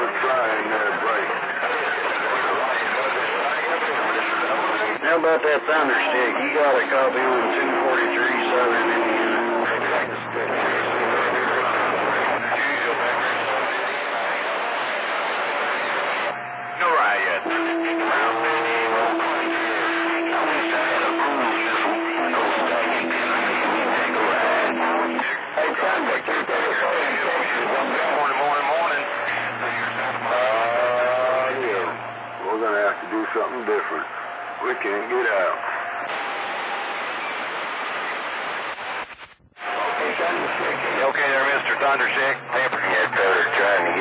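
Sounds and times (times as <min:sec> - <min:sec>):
garbled radio voices: 0:00.0 - 0:44.0
radio static: 0:00.0 - 0:44.0
steady radio tones: 0:00.0 - 0:44.0.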